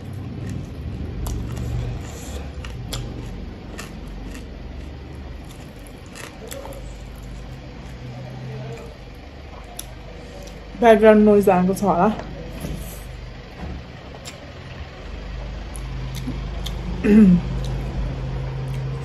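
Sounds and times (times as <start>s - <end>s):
low background rumble: 0.0s - 19.0s.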